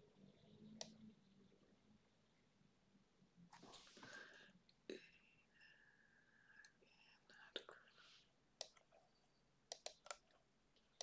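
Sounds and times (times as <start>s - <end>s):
computer mouse clicks: 0.8s - 1.0s, 9.7s - 10.4s
faint whispering: 3.6s - 8.4s.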